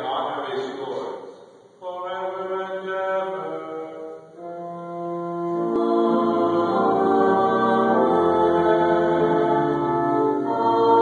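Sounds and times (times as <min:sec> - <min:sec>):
church music with held chords: 0:00.0 - 0:11.0.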